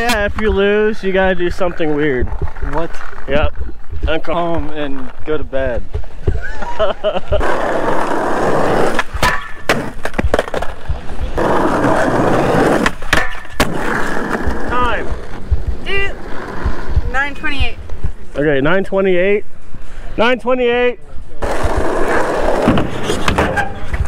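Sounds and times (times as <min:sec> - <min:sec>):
skateboard wheels rolling on concrete: 0:00.0 - 0:24.0
skateboard clacking: 0:07.5 - 0:14.6.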